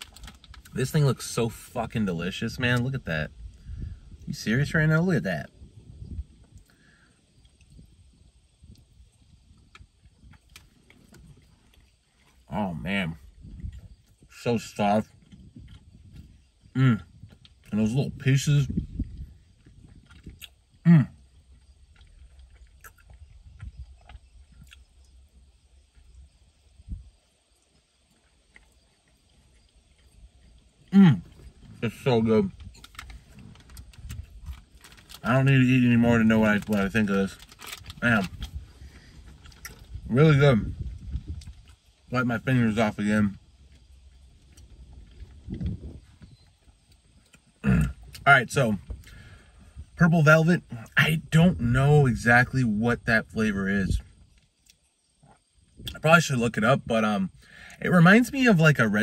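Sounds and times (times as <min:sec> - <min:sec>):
person chewing: 0:19.6 - 0:20.7, 0:21.5 - 0:25.1.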